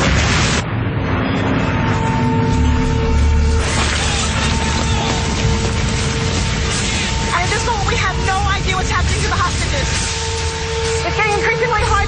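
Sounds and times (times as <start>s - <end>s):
low rumble: 0.0s - 12.0s.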